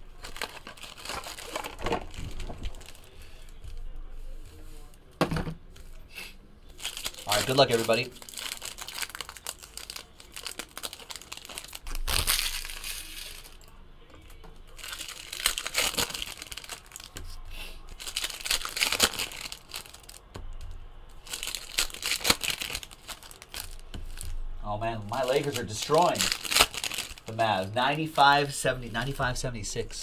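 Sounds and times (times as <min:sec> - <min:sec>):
foil wrappers tearing and crinkling: 0:00.0 - 0:03.6, 0:06.8 - 0:13.7, 0:14.6 - 0:17.2, 0:17.8 - 0:20.2, 0:21.2 - 0:24.3, 0:25.0 - 0:27.4.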